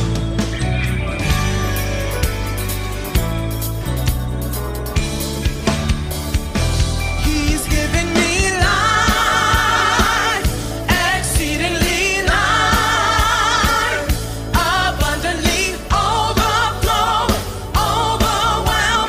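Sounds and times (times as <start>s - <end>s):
band playing: 0.0s - 19.0s
steady drum beat: 2.2s - 19.0s
person singing with vibrato: 7.2s - 19.0s.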